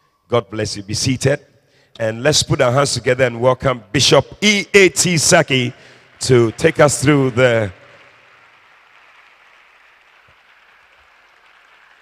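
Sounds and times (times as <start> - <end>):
people clapping faintly: 5.8 - 12.0.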